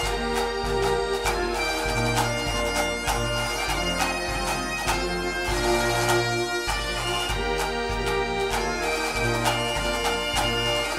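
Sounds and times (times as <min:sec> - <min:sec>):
bagpipes playing a tune: 0:00.0 - 0:10.9.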